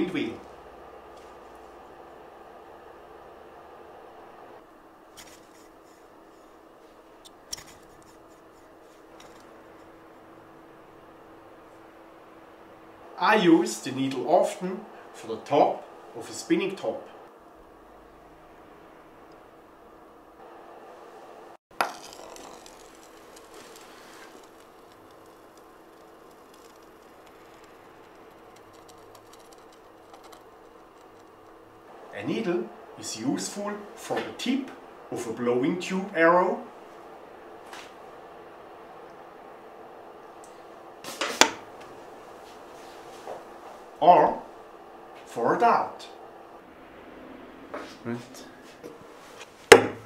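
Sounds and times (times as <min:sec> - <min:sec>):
faint steady hum: 0:00.0 - 0:50.0
spinning top ticking on glass: 0:21.8 - 0:29.3
paper clicks and rustles: 0:21.8 - 0:31.6.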